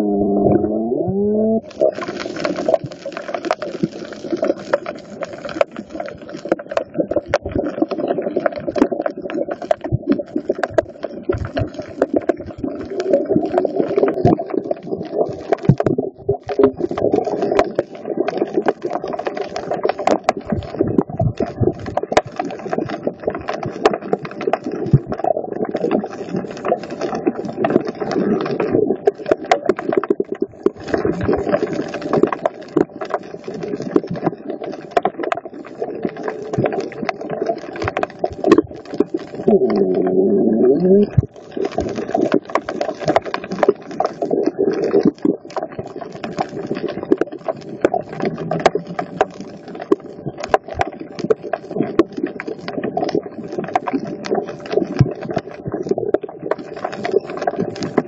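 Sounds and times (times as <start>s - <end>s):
muffled low rumble: 0.0s - 1.7s
crackle of sharp clicks underwater: 0.0s - 58.0s.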